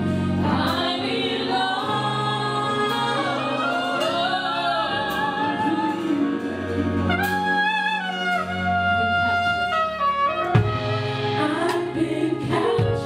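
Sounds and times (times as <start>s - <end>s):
steady musical accompaniment: 0.0s - 13.0s
woman singing gospel: 11.4s - 13.0s.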